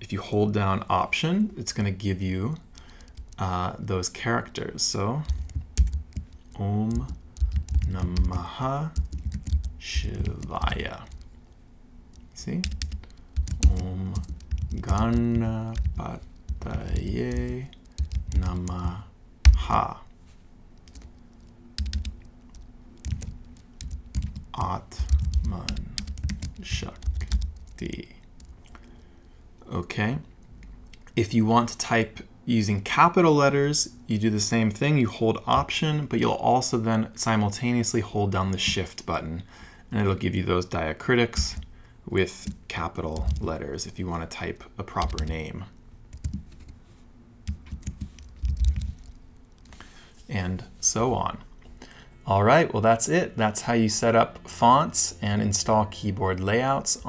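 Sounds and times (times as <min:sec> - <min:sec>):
keyboard typing: 0:02.8 - 0:03.5, 0:05.2 - 0:11.4, 0:12.1 - 0:20.0, 0:20.8 - 0:28.6, 0:42.4 - 0:43.5, 0:45.0 - 0:45.4, 0:46.1 - 0:46.8, 0:47.4 - 0:49.8.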